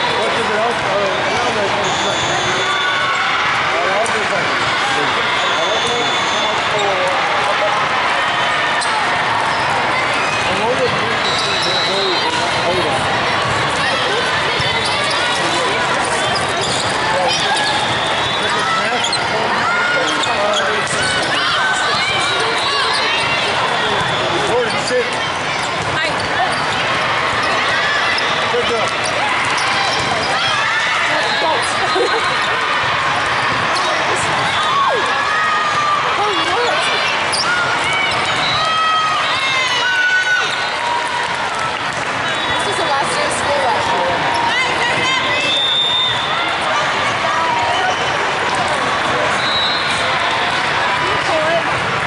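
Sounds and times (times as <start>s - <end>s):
din of many voices: 0.0s - 52.0s
volleyballs hit and bouncing: 23.2s - 31.2s, 50.5s - 52.0s.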